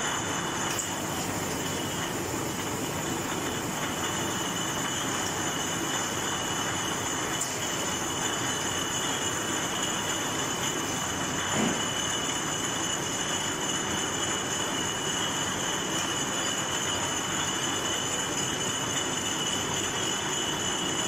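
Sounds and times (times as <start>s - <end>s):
bottle machine and conveyors running: 0.0s - 21.0s.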